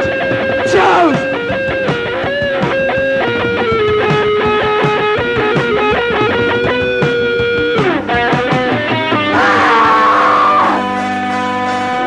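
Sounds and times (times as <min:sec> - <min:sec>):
electric guitar riffing: 0:00.0 - 0:12.0
punk band playing: 0:00.0 - 0:12.0.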